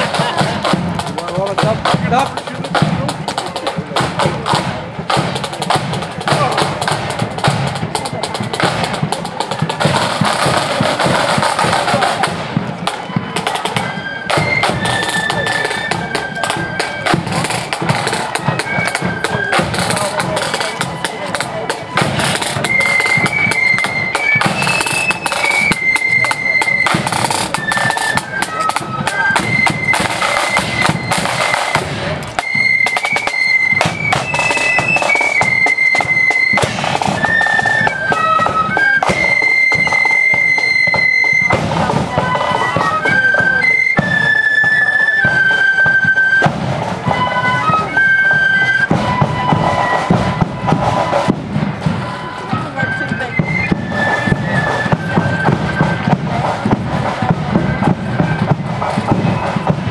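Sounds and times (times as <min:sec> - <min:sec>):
flutes playing march tune: 0:00.0 - 0:59.9
side drums: 0:00.0 - 0:59.9.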